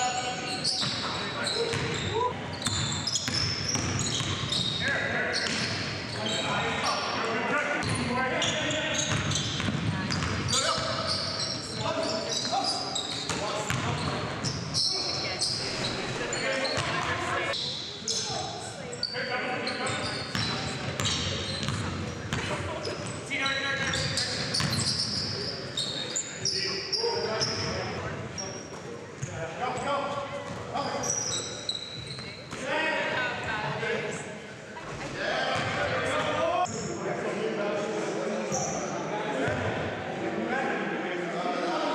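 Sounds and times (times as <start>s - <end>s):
players' voices echoing: 0.0s - 41.9s.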